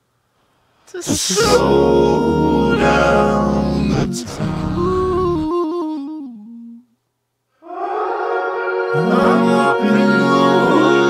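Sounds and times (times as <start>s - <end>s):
auto-tuned a cappella vocal harmonies: 0.9s - 7.0s, 7.6s - 11.0s.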